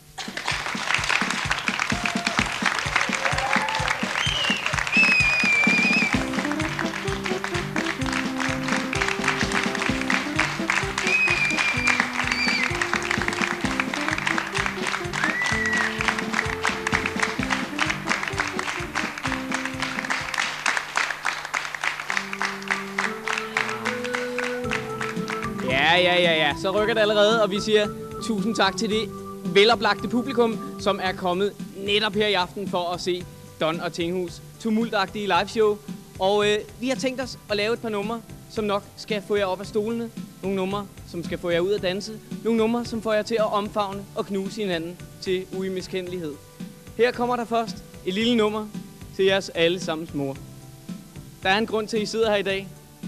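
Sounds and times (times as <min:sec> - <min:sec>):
audience applauding: 0:00.2 - 0:26.0
high whistled tones: 0:04.0 - 0:06.3, 0:11.0 - 0:12.8, 0:15.1 - 0:16.2, 0:23.1 - 0:31.2
synthesizer melody: 0:05.8 - 0:20.4, 0:22.1 - 0:32.1.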